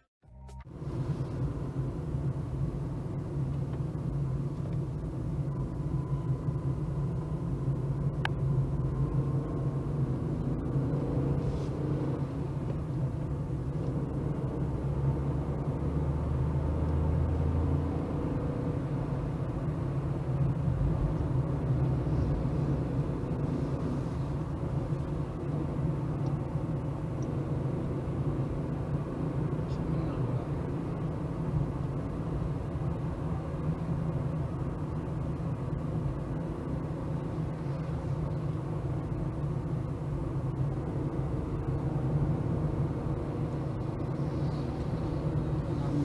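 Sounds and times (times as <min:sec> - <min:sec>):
car engine hum: 0:00.0 - 0:46.0
road noise: 0:00.0 - 0:46.0.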